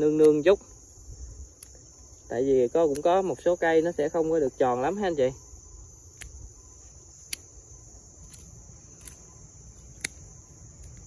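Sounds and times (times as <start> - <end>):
pruning shears snipping: 0.0 - 0.5, 2.8 - 3.4, 6.1 - 6.4, 8.2 - 11.0
high-pitched insect chirring: 0.0 - 11.0.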